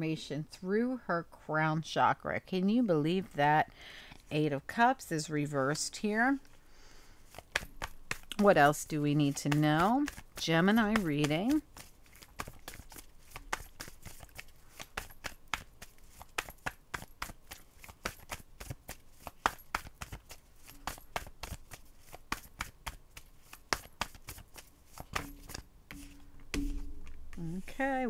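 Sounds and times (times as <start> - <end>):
cards clicking and slapping: 7.3 - 27.2.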